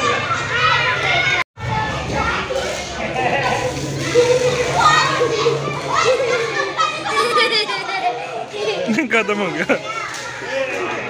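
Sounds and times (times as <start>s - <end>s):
children shouting: 0.0s - 11.0s.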